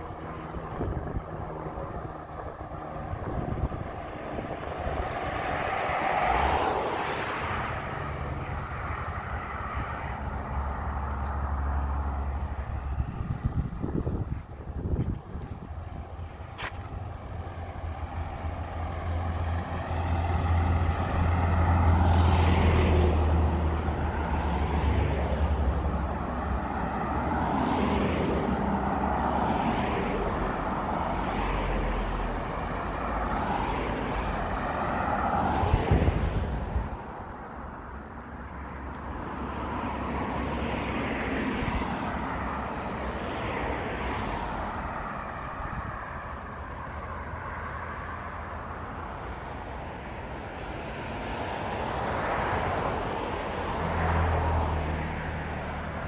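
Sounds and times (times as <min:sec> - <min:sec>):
truck engine rumble: 0:00.0 - 0:05.7
cars passing with tyre noise: 0:00.0 - 0:56.0.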